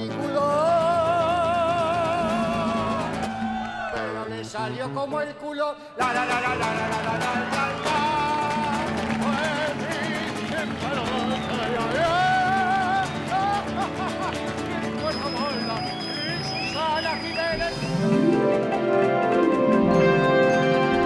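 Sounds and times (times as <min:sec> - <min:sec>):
man singing wordless melody: 0:00.0 - 0:03.3, 0:03.9 - 0:14.2, 0:15.0 - 0:18.3
acoustic guitar strumming: 0:06.0 - 0:21.0.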